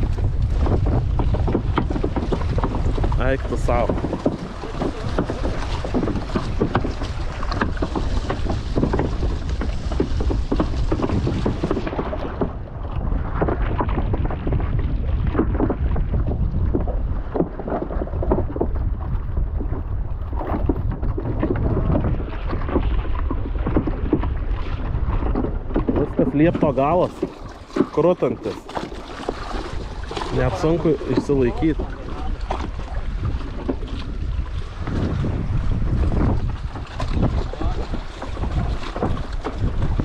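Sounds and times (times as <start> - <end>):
waves slapping wooden footbridge: 0.0 - 40.0
wind buffeting microphone: 0.0 - 40.0.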